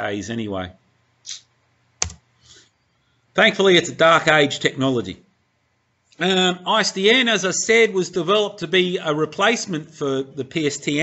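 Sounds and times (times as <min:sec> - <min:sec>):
computer keyboard key click: 0:02.0 - 0:02.2.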